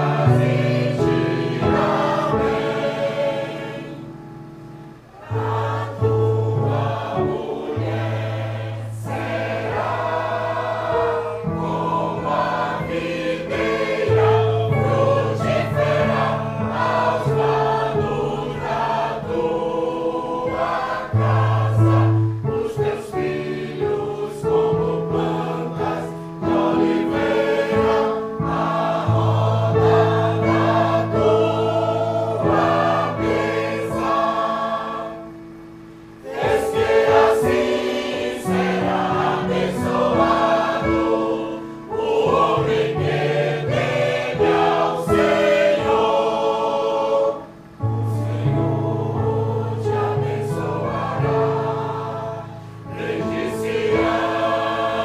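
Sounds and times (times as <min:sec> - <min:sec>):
choir singing in parts: 0:00.0 - 0:55.0
electronic keyboard accompaniment: 0:00.0 - 0:55.0.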